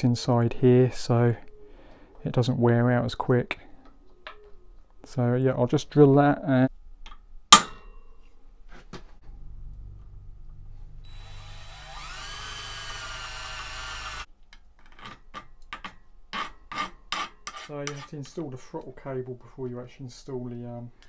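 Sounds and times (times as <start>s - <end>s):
power drill boring metal: 11.0s - 14.3s.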